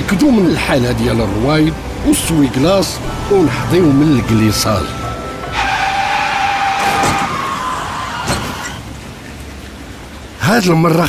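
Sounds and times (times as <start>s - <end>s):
background music: 0.0s - 8.7s
tyre screech on wet road: 5.4s - 9.0s.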